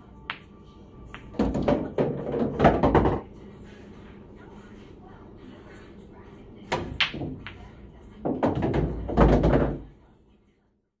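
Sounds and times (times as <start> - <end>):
pool balls knocking and rolling: 0.2 - 3.3, 6.7 - 9.9.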